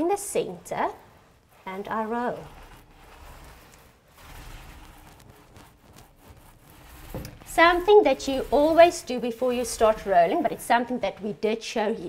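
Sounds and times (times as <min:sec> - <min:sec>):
paint roller soft rubbing: 0:00.6 - 0:10.9.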